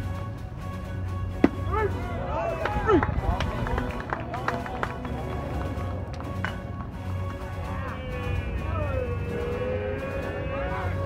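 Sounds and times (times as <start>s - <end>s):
indistinct voices: 7.3s - 11.0s.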